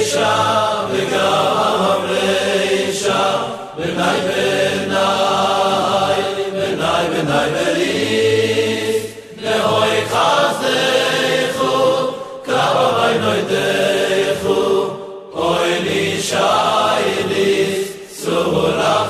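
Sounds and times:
voices singing: 0:00.0 - 0:19.0.

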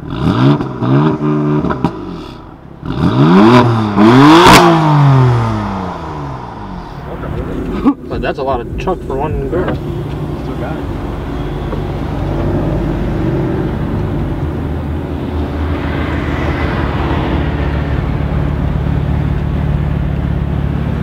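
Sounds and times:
car engine rumbling: 0:00.0 - 0:21.0
car driving past: 0:02.2 - 0:19.8.

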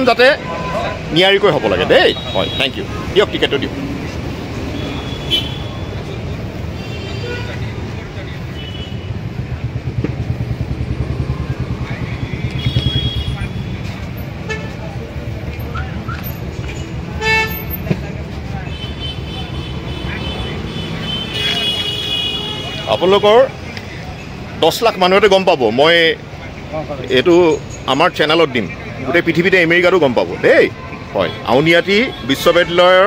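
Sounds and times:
vehicle horns tooting: 0:00.0 - 0:03.1, 0:04.6 - 0:09.3, 0:12.1 - 0:14.9, 0:16.9 - 0:17.8, 0:18.5 - 0:23.5, 0:30.5 - 0:33.0
vehicle engine throbbing: 0:09.0 - 0:18.5.

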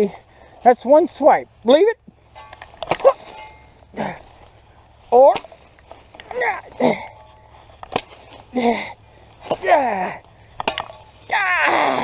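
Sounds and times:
machete striking sapling: 0:02.3 - 0:08.7, 0:09.4 - 0:12.0
person grunting: 0:06.3 - 0:07.2, 0:09.6 - 0:10.2, 0:11.3 - 0:12.0.

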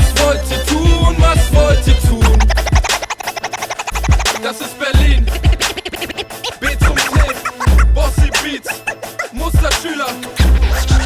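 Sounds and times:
hip hop beat: 0:00.0 - 0:11.0
heavy kick drum: 0:00.9 - 0:02.8, 0:06.8 - 0:08.4
turntable scratching: 0:02.1 - 0:10.0.

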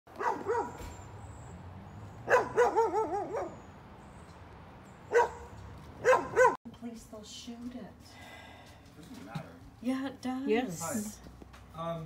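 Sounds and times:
dog barking: 0:00.1 - 0:00.8, 0:02.2 - 0:03.6, 0:05.1 - 0:06.6.

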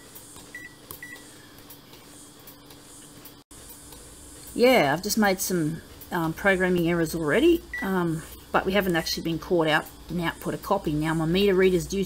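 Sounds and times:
high key-press beeps: 0:00.0 - 0:01.4, 0:07.6 - 0:08.1
low steady hum: 0:03.6 - 0:12.0.

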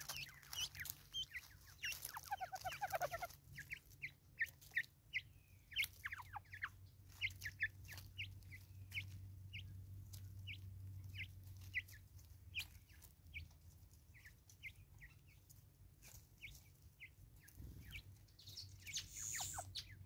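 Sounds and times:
beaks pecking on wood: 0:00.0 - 0:04.8
birds clucking: 0:00.0 - 0:20.0.

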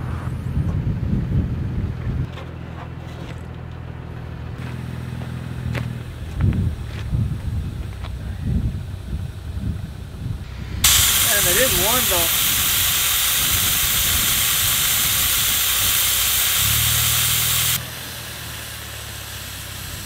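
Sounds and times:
vehicle engine idling: 0:00.5 - 0:20.0
footsteps on gravel: 0:04.6 - 0:08.2
air hissing out of tire: 0:10.5 - 0:20.0.

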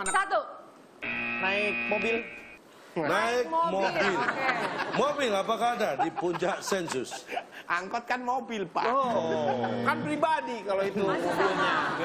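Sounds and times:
electronic buzzer tone: 0:01.0 - 0:02.6.

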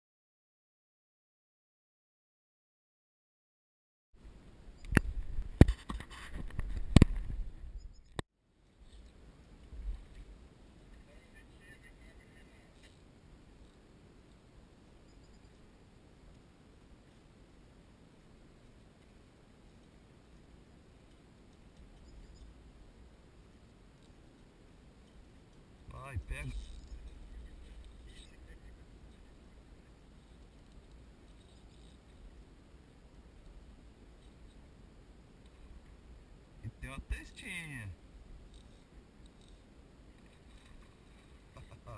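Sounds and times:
water: 0:04.3 - 0:41.9
wind rumble on microphone: 0:04.7 - 0:08.2
faint low rumble: 0:06.4 - 0:41.9
soft ticks: 0:18.6 - 0:22.6, 0:23.5 - 0:25.7, 0:30.2 - 0:32.5, 0:35.4 - 0:35.9, 0:38.5 - 0:41.4.

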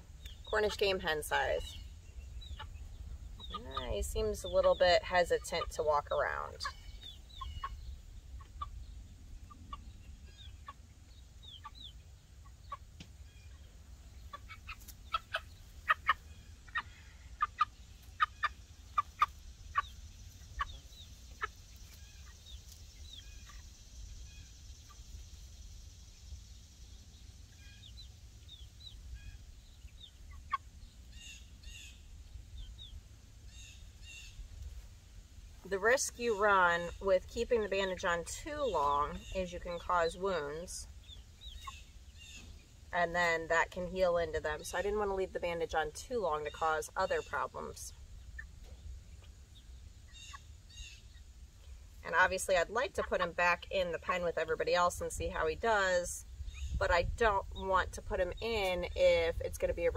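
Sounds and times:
chick peeping: 0:00.0 - 0:34.9, 0:35.5 - 0:59.9.

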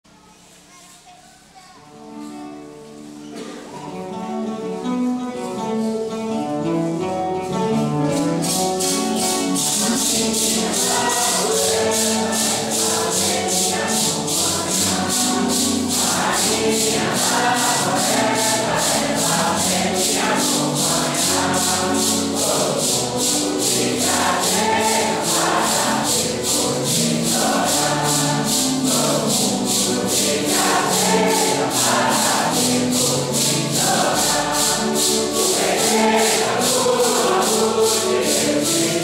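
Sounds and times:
congregation singing a hymn: 0:06.5 - 0:39.0
maracas shaking: 0:06.6 - 0:39.0.

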